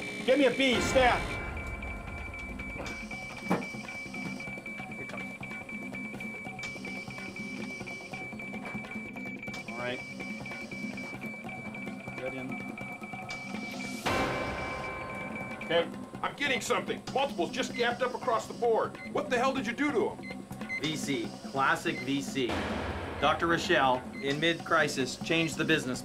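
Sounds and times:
steady high-pitched tone: 0.0s - 18.7s
background music: 0.0s - 26.0s.

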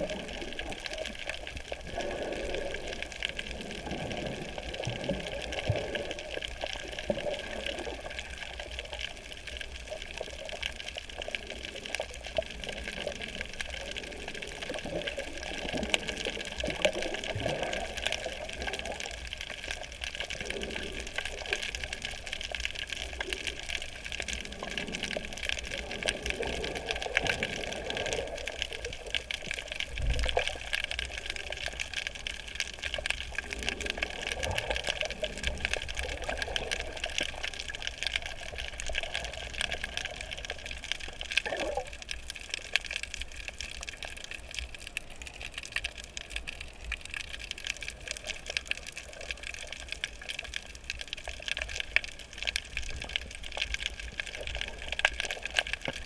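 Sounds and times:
fine crackling of reef: 0.0s - 56.0s.

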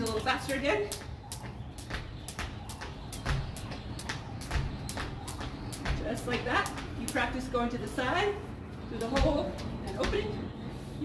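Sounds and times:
jump rope slapping concrete: 0.0s - 8.0s.

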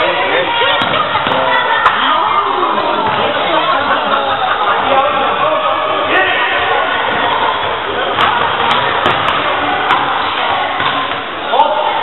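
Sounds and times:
echoing crowd voices: 0.0s - 12.0s.

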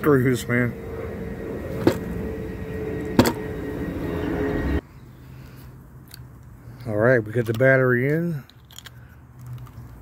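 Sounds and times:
low outdoor rumble: 0.0s - 7.3s.

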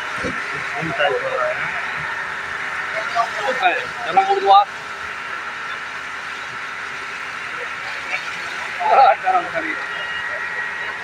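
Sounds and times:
people talking: 0.0s - 4.8s, 5.6s - 11.0s
water jet spraying from fire hose: 0.0s - 11.0s.

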